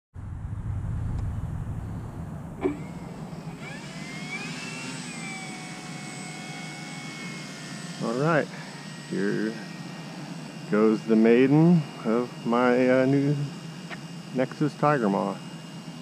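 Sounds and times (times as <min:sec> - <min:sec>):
low microphone rumble: 0:00.1 - 0:03.6
electric motor whine: 0:01.1 - 0:16.0.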